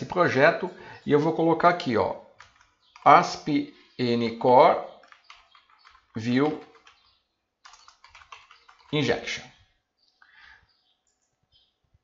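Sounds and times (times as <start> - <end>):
computer keyboard typing: 2.3 - 4.0, 4.8 - 9.2, 11.0 - 11.4.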